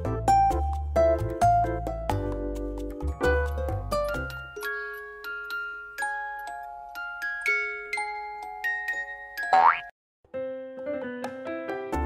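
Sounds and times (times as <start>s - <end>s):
soft keyboard music: 0.0s - 12.0s.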